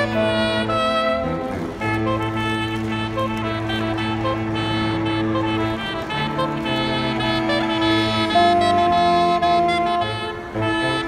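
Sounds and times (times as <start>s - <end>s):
saxophone quartet playing: 0.0s - 11.0s.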